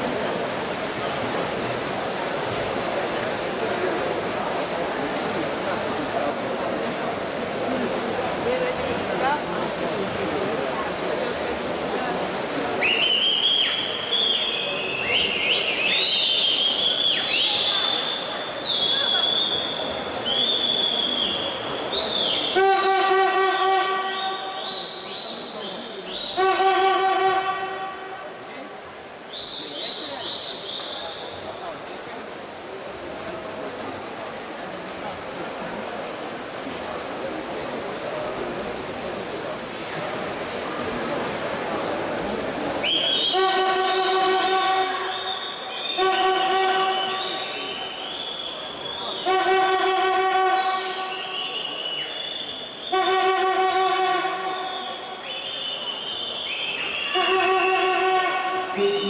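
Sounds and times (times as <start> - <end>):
pool hall background noise: 0.0 - 59.0
horn blasts: 22.5 - 24.6, 26.2 - 28.4, 43.1 - 48.0, 49.1 - 51.4, 52.8 - 55.2, 57.1 - 59.0.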